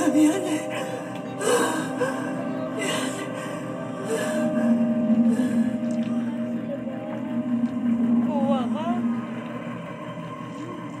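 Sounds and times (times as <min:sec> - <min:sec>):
low sustained drone: 0:00.0 - 0:11.0.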